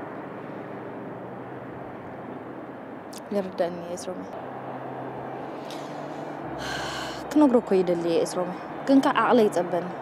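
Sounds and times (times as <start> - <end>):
person sharp breath in: 5.4 - 7.2.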